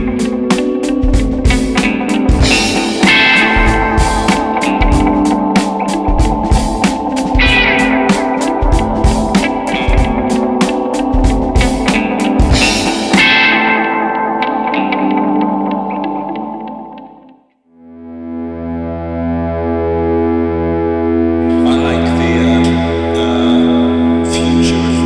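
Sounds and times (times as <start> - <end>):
pulsing drone chord: 0.0 - 17.2, 17.8 - 25.0
electric guitar with delay echoes: 0.0 - 25.0.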